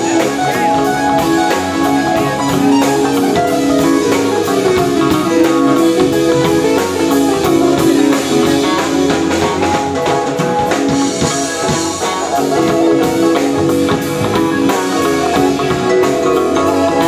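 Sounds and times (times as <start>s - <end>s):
drum kit cymbal beat: 0.0s - 17.0s
electric bass: 0.0s - 17.0s
keyboard chords: 0.0s - 17.0s.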